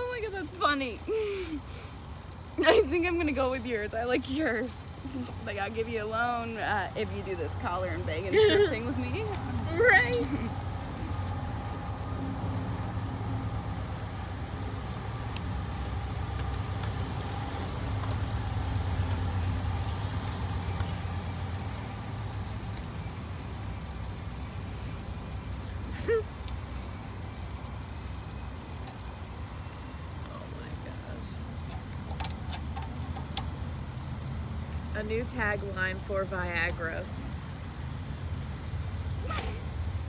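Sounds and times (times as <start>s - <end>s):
distant road traffic rumble: 0.0s - 40.0s.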